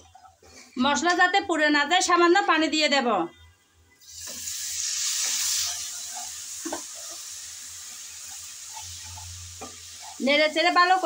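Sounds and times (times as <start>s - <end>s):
masala sizzling in hot oil: 4.0s - 11.0s
spatula scraping pan: 5.0s - 11.0s.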